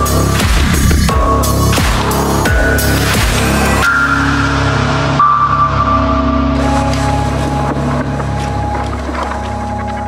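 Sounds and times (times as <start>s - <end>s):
low bass drone: 0.0s - 10.0s.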